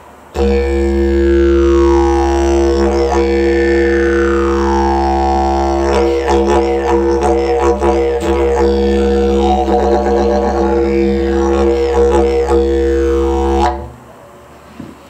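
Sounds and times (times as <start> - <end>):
didgeridoo drone: 0.3 - 14.0.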